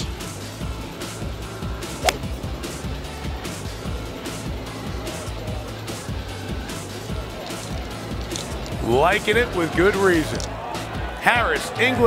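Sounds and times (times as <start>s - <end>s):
golf club striking ball: 2.0s - 2.4s.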